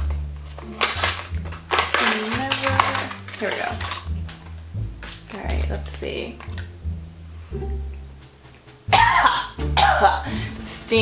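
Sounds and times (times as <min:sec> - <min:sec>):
woman coughing: 0:08.9 - 0:10.3.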